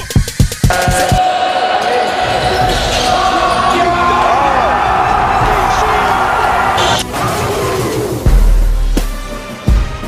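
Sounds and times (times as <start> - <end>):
players' voices echoing: 0.7 - 7.9.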